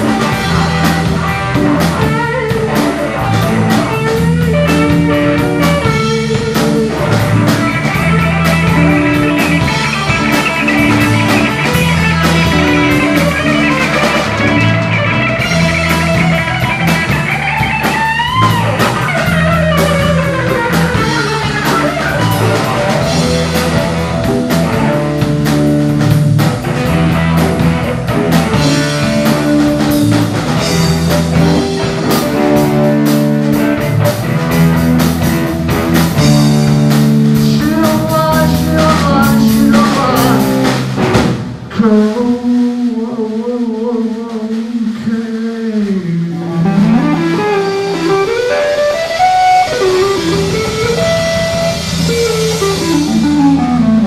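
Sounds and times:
bass guitar riff: 0.0s - 54.0s
drum kit: 0.0s - 54.0s
electric lead guitar: 0.0s - 54.0s.

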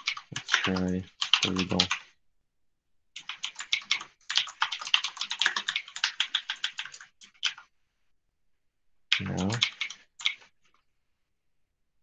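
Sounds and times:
typing on computer keyboard: 0.0s - 2.1s, 3.2s - 7.7s, 9.1s - 10.8s.

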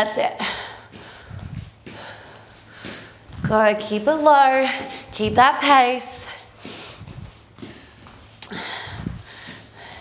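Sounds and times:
woman breathing hard through nose: 0.4s - 3.4s, 6.3s - 10.0s.

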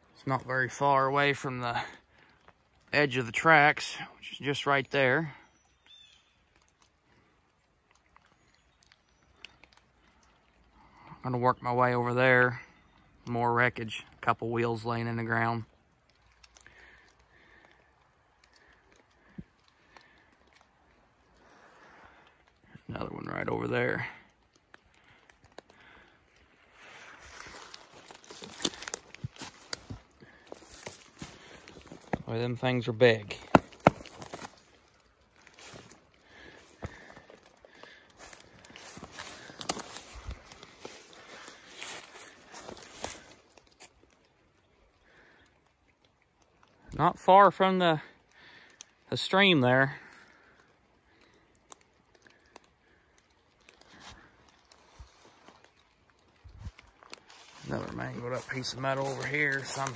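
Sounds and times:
footsteps through dry leaves: 26.6s - 44.1s, 53.7s - 59.9s.

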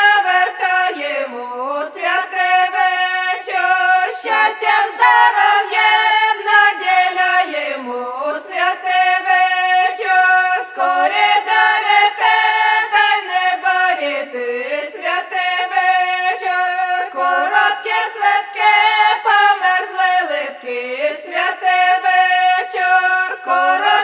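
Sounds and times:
vocal ensemble singing in harmony: 0.0s - 24.0s.

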